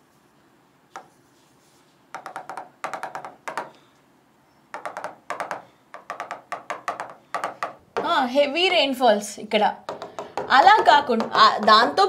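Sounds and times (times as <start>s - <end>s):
stylus tapping on glass: 2.2s - 3.8s, 4.7s - 8.1s, 9.9s - 11.8s.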